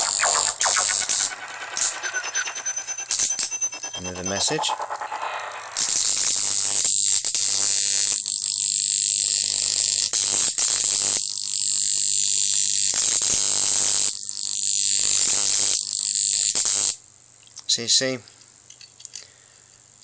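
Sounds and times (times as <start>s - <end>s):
electric arc buzzing hiss: 0.0s - 1.9s
low hum: 0.0s - 6.3s
high whine: 0.0s - 6.6s.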